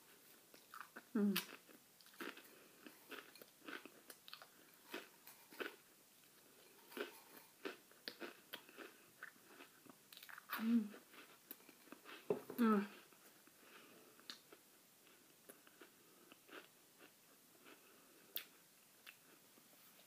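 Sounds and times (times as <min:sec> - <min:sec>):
crackers being crunched and chewed: 0:00.5 - 0:12.3.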